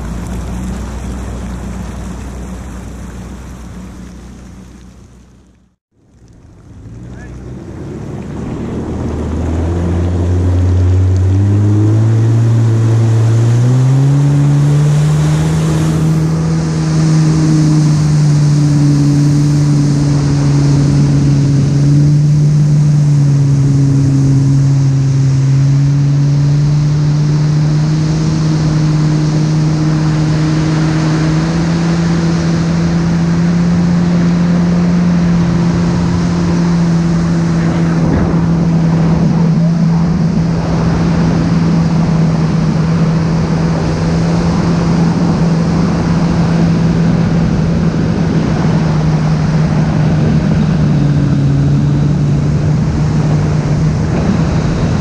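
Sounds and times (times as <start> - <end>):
wind and water spray rushing: 0.0 - 5.5, 6.3 - 55.0
watercraft engine revving: 0.0 - 55.0.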